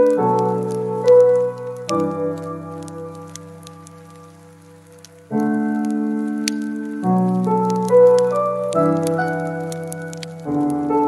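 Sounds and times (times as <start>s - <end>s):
soft piano music: 0.0s - 11.0s
water drips: 0.0s - 11.0s.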